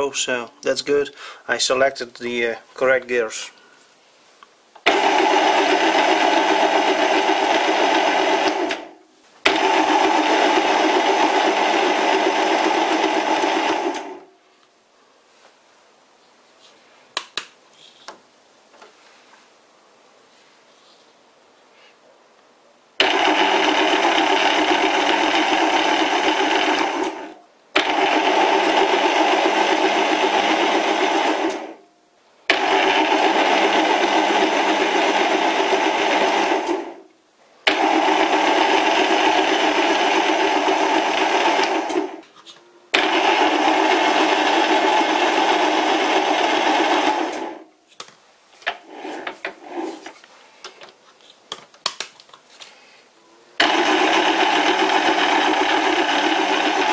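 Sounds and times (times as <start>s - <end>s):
lathe motor running: 4.9s - 8.9s, 9.5s - 14.2s, 23.0s - 31.8s, 32.5s - 37.0s, 37.7s - 42.2s, 43.0s - 47.6s, 53.6s - 56.9s.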